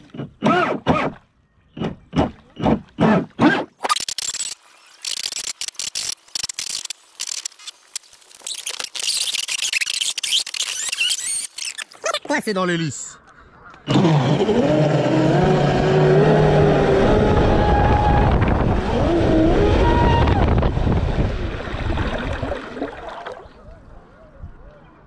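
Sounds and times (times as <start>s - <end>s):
electric motor whining: 13.9s - 19.7s
water rushing off hull: 13.9s - 23.7s.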